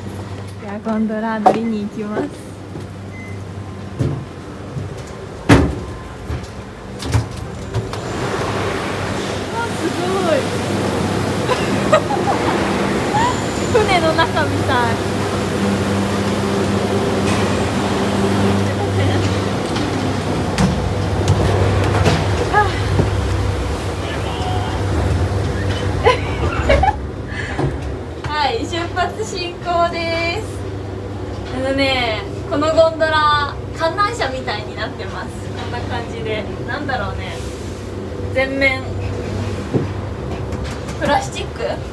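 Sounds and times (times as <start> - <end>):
lift station machinery rushing: 0.0 - 41.9
machinery squeals: 13.0 - 14.3.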